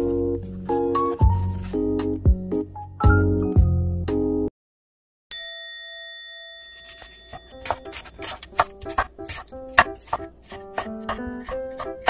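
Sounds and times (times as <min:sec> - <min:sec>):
background music: 0:00.0 - 0:04.5, 0:07.6 - 0:12.0
bell-like ding: 0:05.3 - 0:08.0
knife on wooden cutting board: 0:06.8 - 0:12.0.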